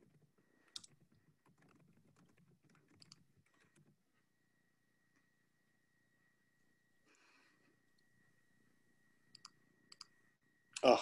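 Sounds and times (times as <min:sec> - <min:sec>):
computer keyboard typing: 0:00.6 - 0:03.9.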